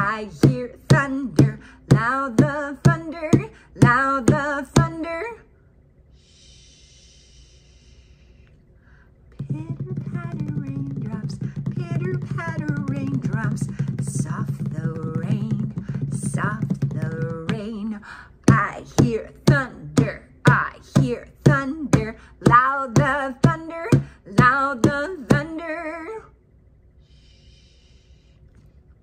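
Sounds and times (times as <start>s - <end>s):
woman singing wordlessly: 0.0s - 5.5s, 9.3s - 26.4s.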